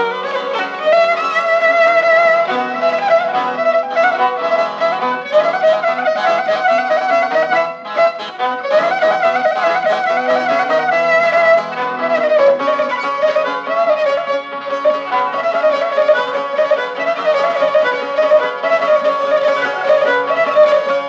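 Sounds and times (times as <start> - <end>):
bowed fiddle melody: 0.0 - 21.0
rhythmic accompaniment: 0.0 - 21.0.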